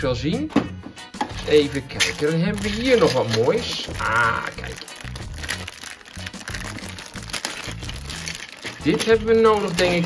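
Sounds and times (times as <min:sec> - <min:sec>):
background music: 0:00.0 - 0:10.0
plastic bag crinkling: 0:01.4 - 0:10.0.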